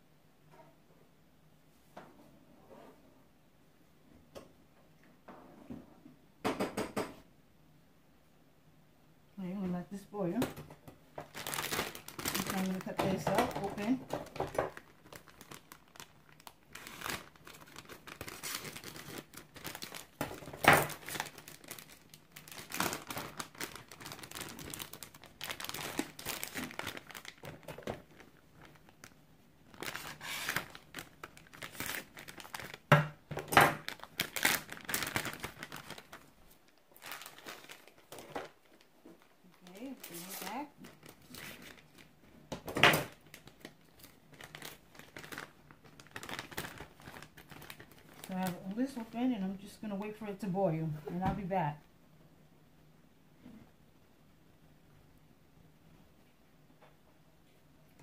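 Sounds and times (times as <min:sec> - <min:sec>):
plastic packaging crinkling and tearing: 0:11.1 - 0:49.2.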